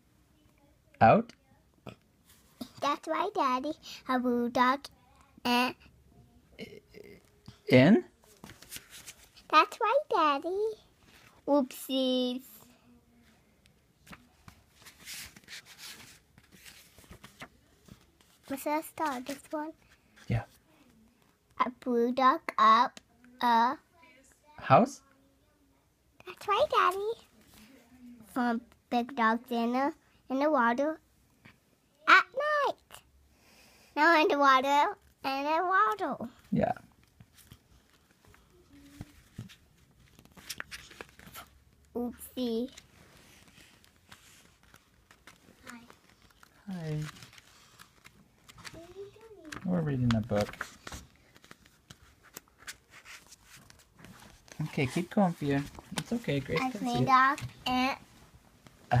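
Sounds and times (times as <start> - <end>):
book pages turning: 8.2 - 9.5, 14.0 - 20.6, 36.9 - 41.9, 42.6 - 58.8
paper swishes: 8.3 - 9.4, 14.1 - 20.3.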